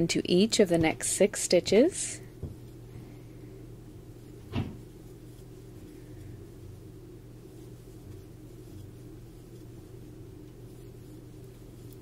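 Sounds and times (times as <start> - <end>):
faint steady hum: 0.0 - 12.0
soft knock: 2.4 - 2.6.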